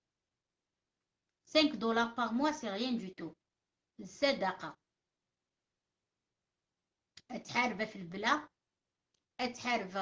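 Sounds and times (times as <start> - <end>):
woman speaking: 1.5 - 3.4, 4.0 - 4.8, 7.2 - 8.6, 9.4 - 10.0.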